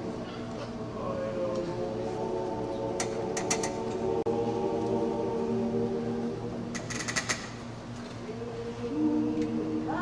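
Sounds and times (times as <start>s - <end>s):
men's barbershop harmony singing: 1.0s - 7.0s, 8.3s - 10.0s.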